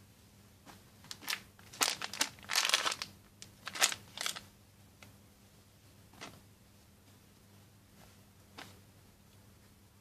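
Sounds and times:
plastic bag crinkling: 1.1s - 4.4s.

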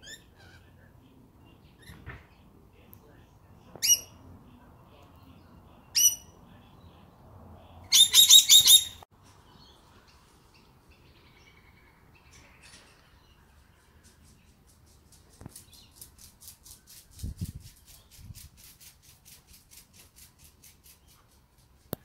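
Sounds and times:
lorikeets calling: 7.9s - 9.0s.

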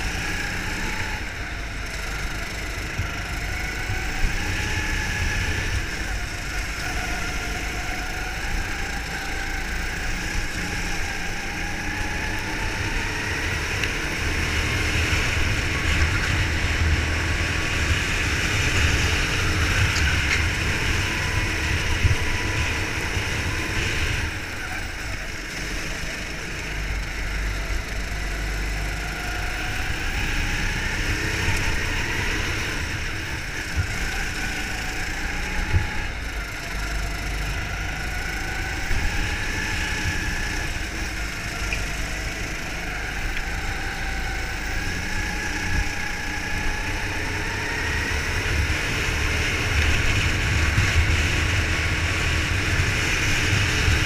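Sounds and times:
go-kart engine revving: 0.0s - 54.0s.

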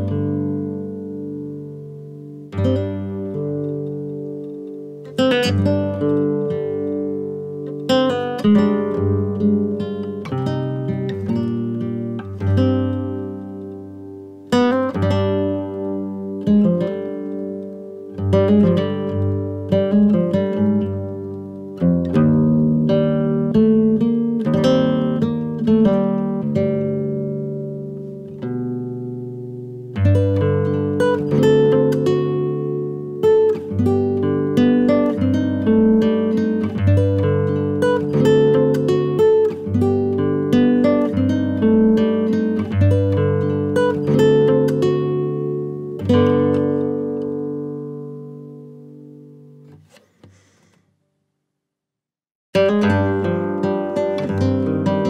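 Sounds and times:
plucked acoustic guitar music: 0.0s - 50.8s, 52.5s - 55.0s.

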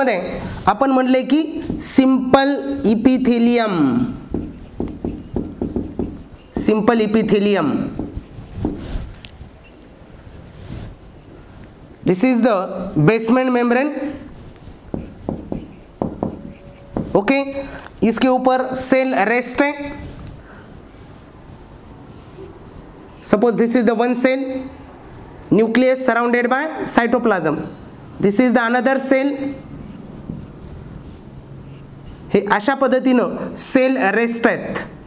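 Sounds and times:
marker pen squeaking on whiteboard: 1.5s - 9.8s, 14.0s - 17.8s, 22.1s - 25.0s, 29.3s - 32.2s.

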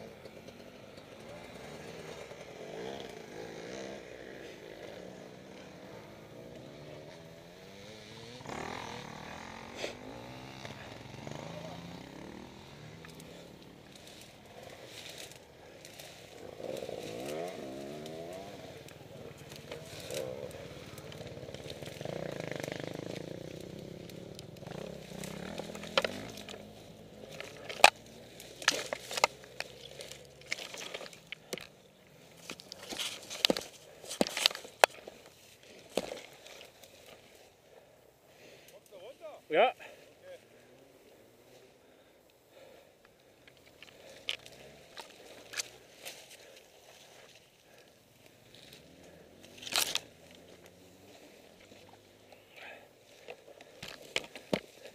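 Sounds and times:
small engine revving: 0.0s - 39.0s, 39.8s - 54.9s.

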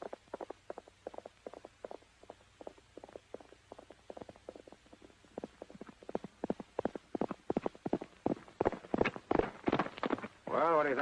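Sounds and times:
horse galloping on dirt: 0.0s - 11.0s.

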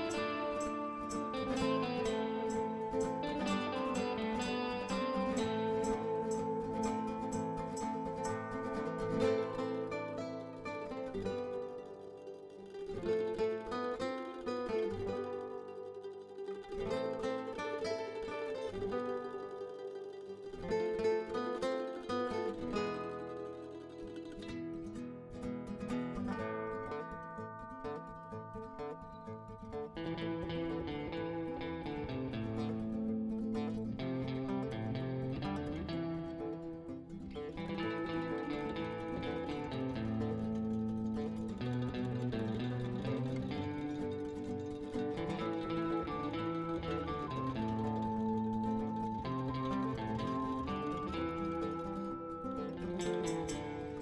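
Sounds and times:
plucked string music: 0.0s - 54.0s.

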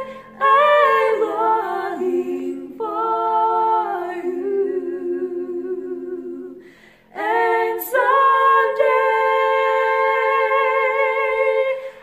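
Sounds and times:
women singing a hymn in harmony: 0.0s - 12.0s.

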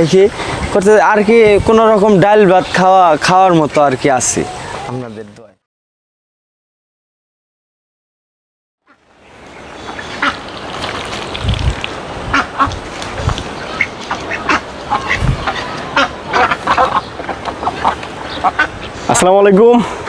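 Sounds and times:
ducks quacking: 1.9s - 5.2s, 9.6s - 11.0s, 12.2s - 20.0s.

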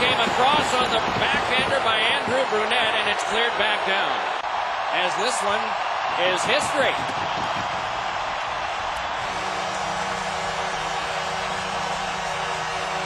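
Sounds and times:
crowd cheering: 0.0s - 13.0s.

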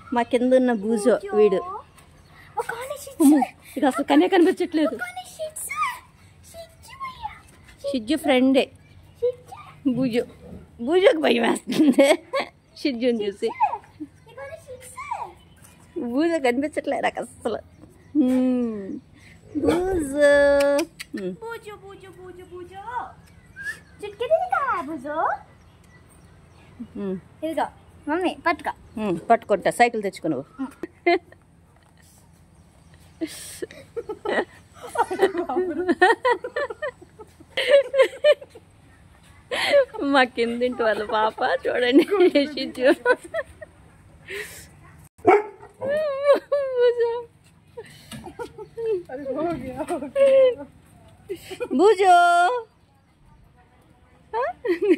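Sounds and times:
dog barking: 45.2s - 45.8s.

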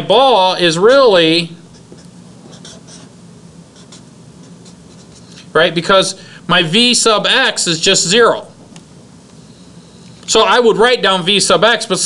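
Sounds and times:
marker scratching on whiteboard: 1.6s - 5.4s
marker squeaks: 1.6s - 5.4s.

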